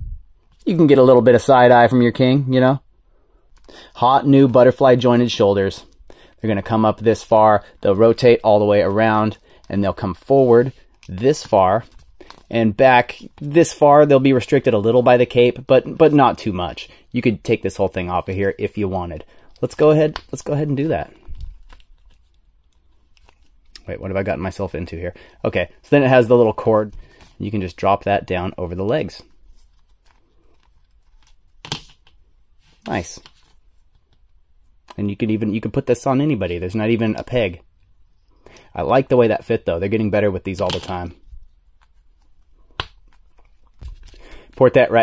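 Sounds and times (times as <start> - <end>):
faint plastic handling noises: 17.7 - 25.8, 28.8 - 35.1, 40.4 - 44.8.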